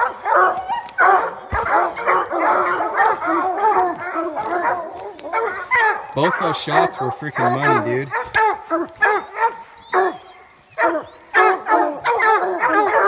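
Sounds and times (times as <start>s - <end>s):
hounds barking and yipping: 0.0s - 13.0s.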